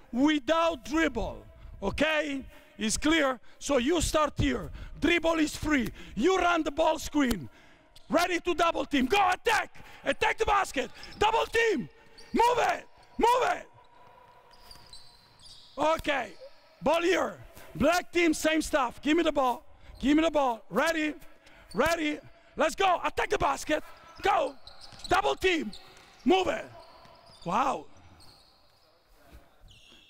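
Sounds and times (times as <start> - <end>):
man's voice: 0.0 - 7.5, 15.8 - 25.7, 26.3 - 26.7
shoe squeaks on court: 12.0 - 13.2, 14.4 - 16.8, 23.9 - 30.0.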